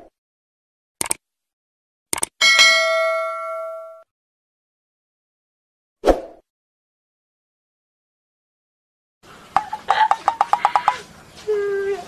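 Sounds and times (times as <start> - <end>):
bright bell ding: 2.4 - 4.1.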